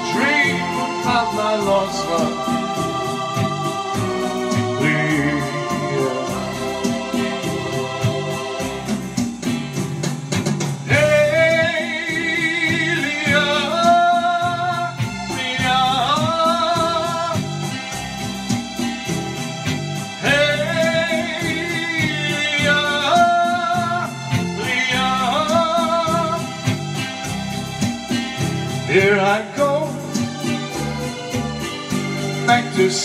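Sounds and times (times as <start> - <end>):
strummed acoustic guitar: 0.0 - 33.0.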